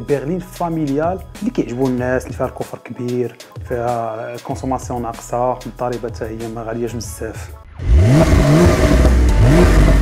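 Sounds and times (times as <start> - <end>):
car engine revving: 7.7 - 10.0.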